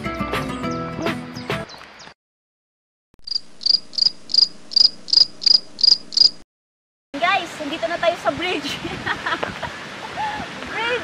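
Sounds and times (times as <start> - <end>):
cricket chirping: 3.2 - 6.4.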